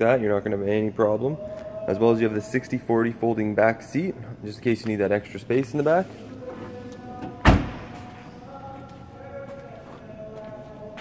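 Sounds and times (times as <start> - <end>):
car trunk lid slamming shut: 7.4 - 7.9.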